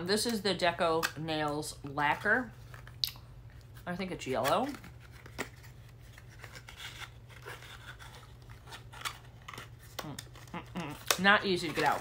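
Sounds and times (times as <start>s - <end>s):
plastic blister pack crinkling: 4.4s - 12.0s.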